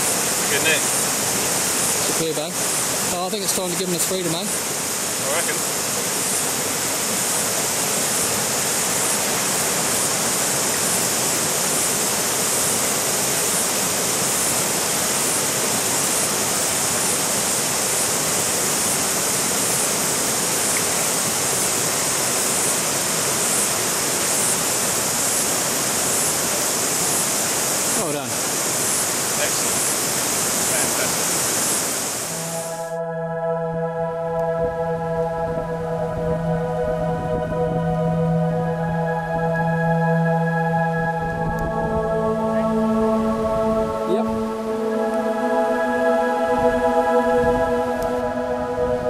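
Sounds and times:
river water rushing over rapids: 0.0s - 32.6s.

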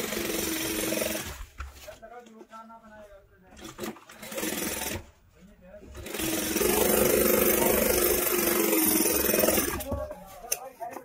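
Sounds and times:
sewing machine stitching: 0.0s - 1.5s, 3.6s - 5.1s, 5.9s - 9.9s.

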